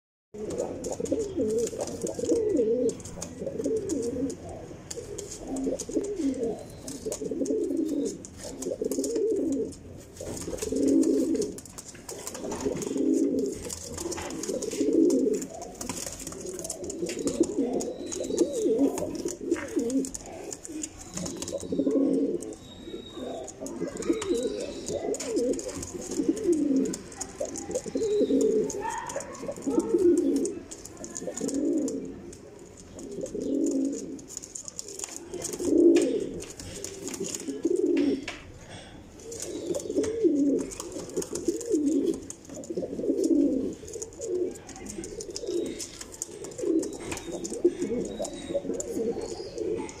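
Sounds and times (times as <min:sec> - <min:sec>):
pigeons cooing: 0:00.4 - 0:50.0
faint clicks: 0:39.2 - 0:50.0.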